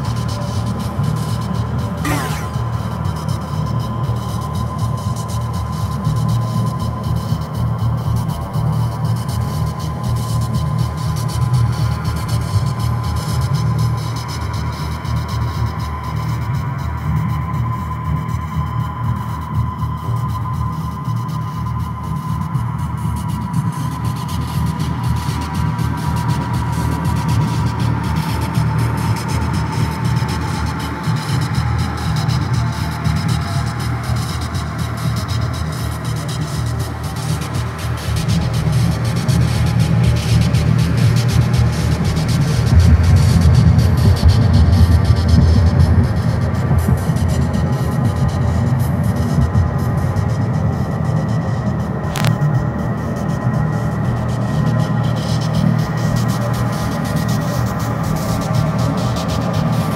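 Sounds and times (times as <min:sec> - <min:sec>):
high tone sinking in pitch: 0:02.0 - 0:03.0
low hum: 0:02.0 - 0:03.1
electronic drone music: 0:02.0 - 0:03.2.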